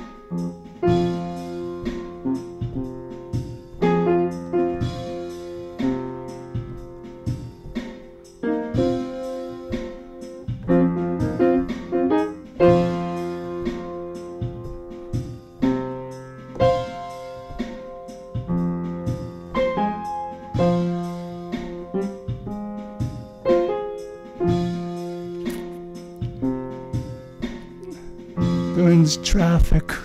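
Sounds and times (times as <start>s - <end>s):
blues piano chords: 0.0s - 30.0s.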